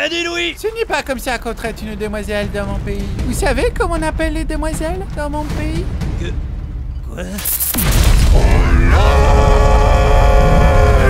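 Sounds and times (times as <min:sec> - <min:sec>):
deep explosion rumble: 0:00.8 - 0:06.9, 0:07.8 - 0:11.0.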